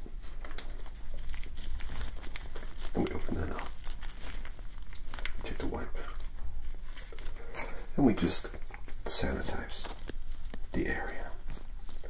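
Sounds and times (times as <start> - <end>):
soft wiping sound: 4.6 - 12.0
person half-whispering: 10.7 - 11.6.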